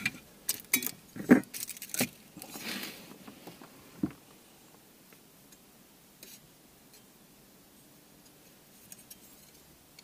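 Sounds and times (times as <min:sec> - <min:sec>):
metal parts clinking: 0:00.5 - 0:02.2.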